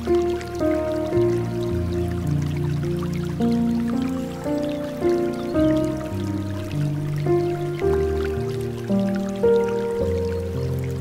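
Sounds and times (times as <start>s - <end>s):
soft piano music: 0.0s - 11.0s
water fountain trickling and dripping: 0.0s - 11.0s.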